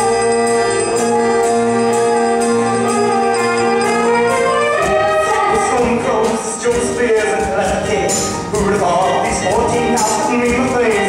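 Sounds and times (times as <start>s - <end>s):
orchestra playing musical accompaniment: 0.0s - 11.0s.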